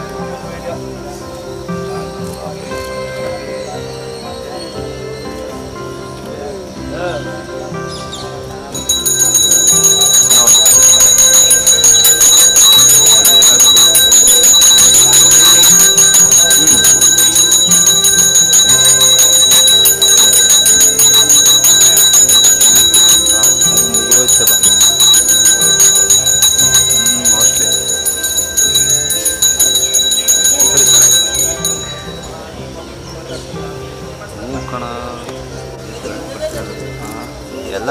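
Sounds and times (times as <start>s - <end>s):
music: 0.0s - 37.9s
hand bell rung rapidly: 8.7s - 32.5s.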